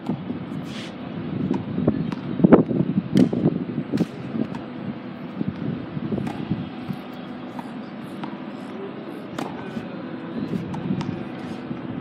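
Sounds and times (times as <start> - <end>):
low rumble of city traffic: 0.0 - 12.0
tennis ball bouncing on court: 1.5 - 4.7, 5.5 - 9.8, 10.4 - 11.6.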